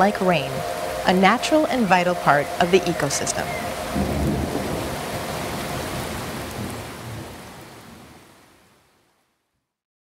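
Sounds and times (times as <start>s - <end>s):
steady rain: 0.0s - 9.8s
low rumble of thunder: 3.1s - 8.3s.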